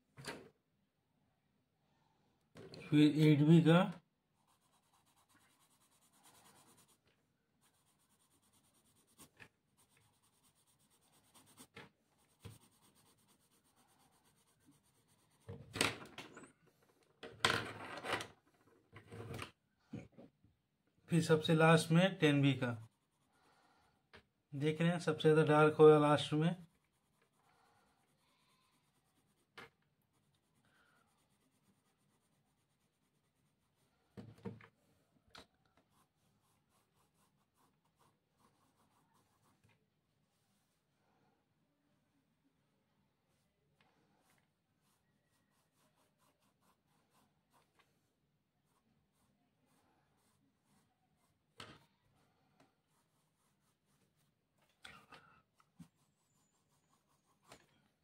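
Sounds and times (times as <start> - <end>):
pencil scratching on paper: 3.0 - 15.8, 21.2 - 34.2, 35.8 - 40.9, 43.3 - 58.0.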